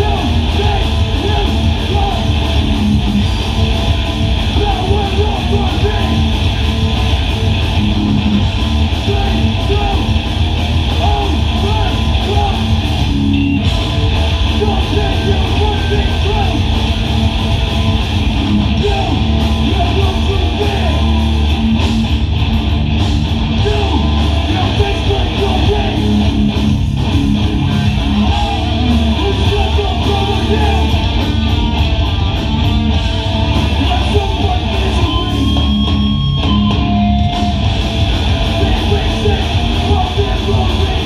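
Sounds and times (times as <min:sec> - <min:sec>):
distorted electric guitars: 0:00.0 - 0:41.0
drums: 0:00.0 - 0:41.0
hardcore band playing live: 0:00.0 - 0:41.0.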